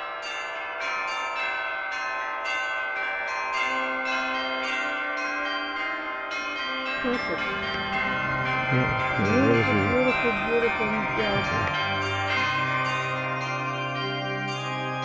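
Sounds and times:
bells ringing: 0.0s - 15.0s.

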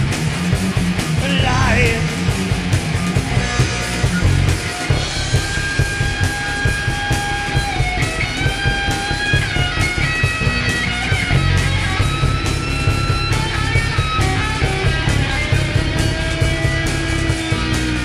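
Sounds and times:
bass guitar: 0.0s - 18.0s
drums: 0.0s - 18.0s
electric guitar lead: 0.0s - 18.0s.

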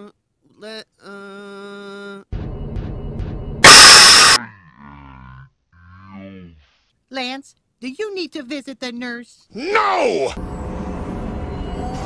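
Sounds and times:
loud burst of harsh noise: 3.6s - 4.4s.

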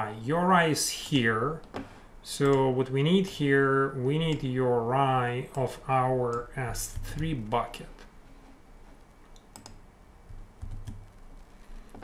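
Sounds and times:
keyboard keys clicking: 9.3s - 11.2s.

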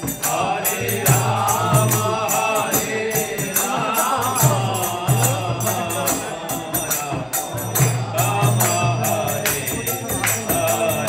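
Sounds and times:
group chanting devotional melody: 0.0s - 11.0s
small hand cymbals: 0.0s - 11.0s
hand clapping: 7.7s - 11.0s.

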